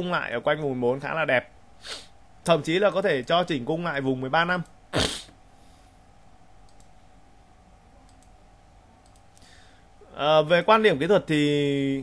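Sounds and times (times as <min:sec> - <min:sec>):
low steady hiss: 0:00.0 - 0:12.0
computer mouse clicks: 0:06.6 - 0:07.0, 0:08.1 - 0:08.4, 0:09.0 - 0:09.5.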